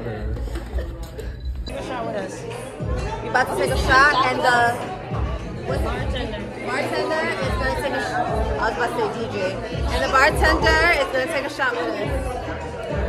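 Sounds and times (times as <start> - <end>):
people chattering: 0.0 - 13.0
music with thumping bass beat: 9.8 - 11.0.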